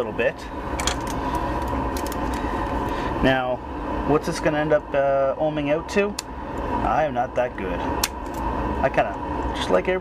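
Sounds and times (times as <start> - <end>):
background hum: 0.0 - 10.0.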